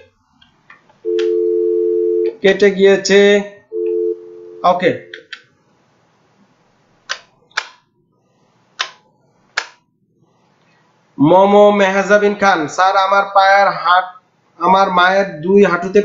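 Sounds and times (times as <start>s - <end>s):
two-note telephone line tone: 1.0s - 2.4s, 3.7s - 5.1s.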